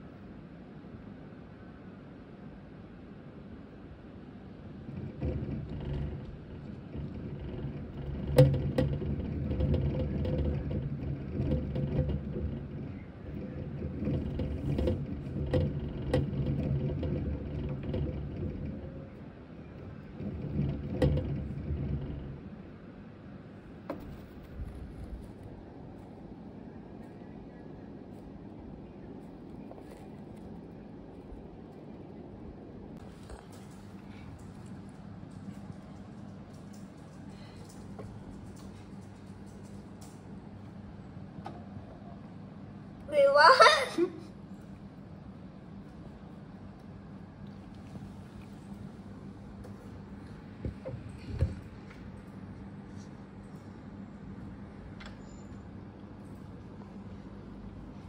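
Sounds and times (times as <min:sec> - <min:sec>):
hamster wheel spinning rumble: 0:03.6 - 0:58.0.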